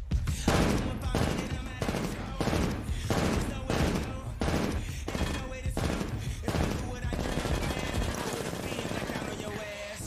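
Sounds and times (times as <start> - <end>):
rapid rifle fire: 0.4 - 10.0.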